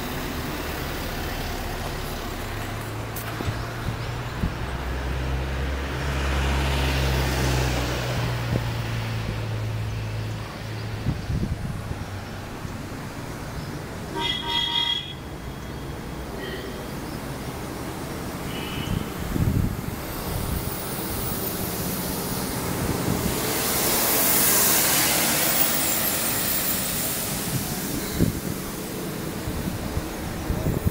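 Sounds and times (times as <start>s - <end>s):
low engine rumble: 0.0s - 30.9s
short horn toots: 14.1s - 15.2s
vehicle horn: 14.1s - 15.3s, 16.4s - 16.8s, 18.5s - 19.1s
rush of noise: 15.2s - 30.9s.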